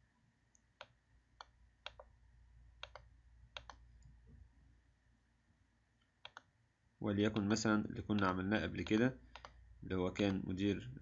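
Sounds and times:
mouse button clicking: 2.8s - 3.8s.

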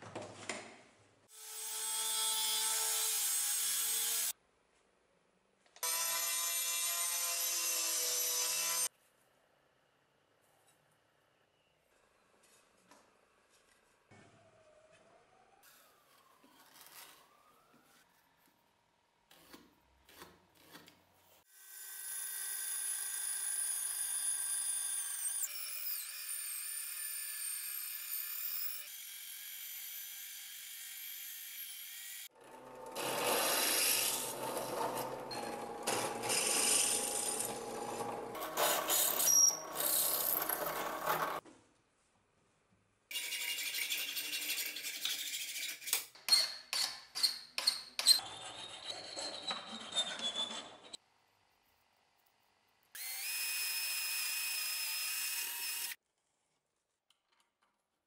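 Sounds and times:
hand saw cutting wood: 19.3s - 21.0s, 32.2s - 41.4s
band saw cutting wood: 21.6s - 41.4s, 53.0s - 56.0s.

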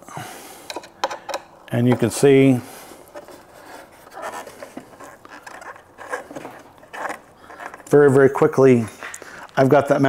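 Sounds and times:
bolt scraping and rattling: 0.7s - 2.4s, 3.1s - 9.6s.

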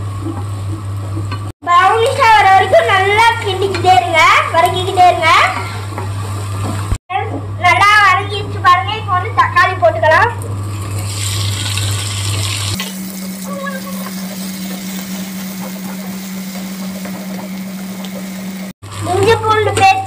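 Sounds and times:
vegetables sizzling in oil: 10.6s - 19.3s.

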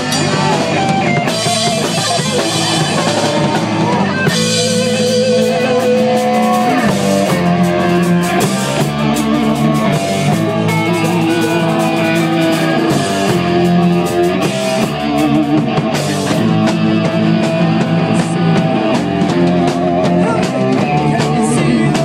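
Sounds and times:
rock band playing live: 0.0s - 22.0s.

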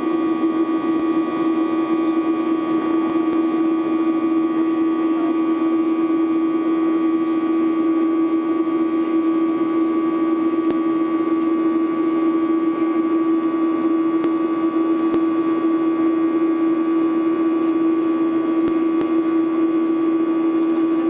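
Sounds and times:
airliner cabin engine drone: 0.0s - 21.0s.

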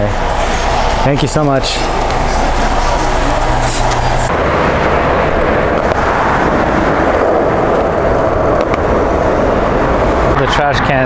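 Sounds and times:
indoor store hum: 0.0s - 11.0s
passing cars rushing: 0.0s - 11.0s.

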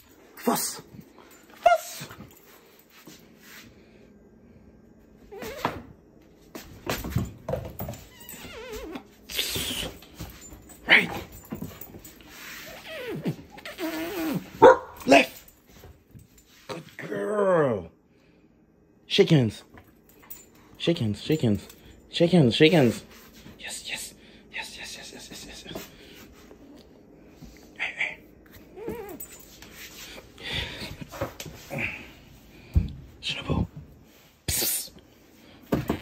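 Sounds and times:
dog whining: 12.6s - 15.0s, 28.7s - 29.5s
dog barking sharply: 14.6s - 15.1s.

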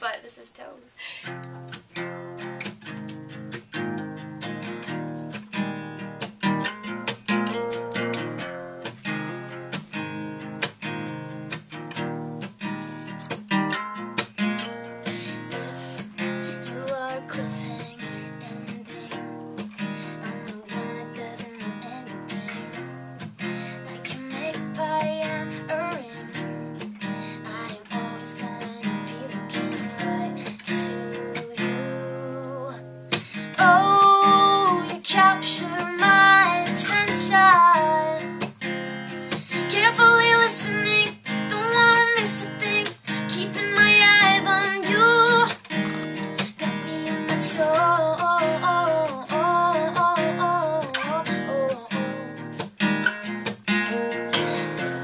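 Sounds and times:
acoustic guitar strumming: 1.1s - 55.0s
woman singing: 14.6s - 45.8s, 46.4s - 55.0s.

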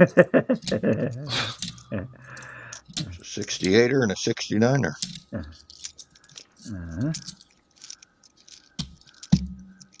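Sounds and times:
person laughing: 0.0s - 2.3s, 5.3s - 5.6s
coins clicking: 0.5s - 4.0s, 5.0s - 10.0s.

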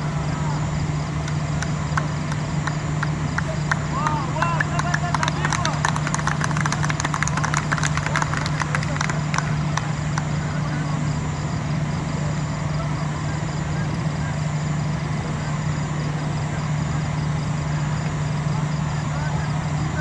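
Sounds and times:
steady low hum: 0.0s - 20.0s
voices calling: 0.0s - 20.0s
people clapping: 1.2s - 10.7s.

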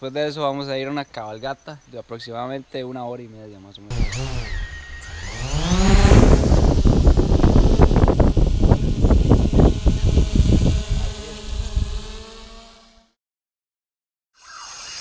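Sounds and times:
propeller wash buffeting microphone: 3.9s - 12.8s
drone motors whining: 3.9s - 13.1s.

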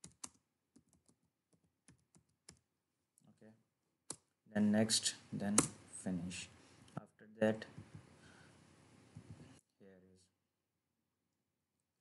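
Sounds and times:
computer keyboard typing: 0.0s - 2.7s.

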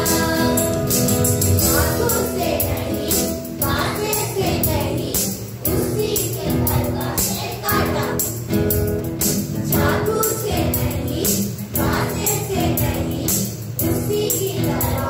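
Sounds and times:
children singing in chorus: 0.0s - 1.0s, 1.6s - 8.4s, 9.7s - 15.0s
jingly percussion beat: 0.0s - 15.0s.

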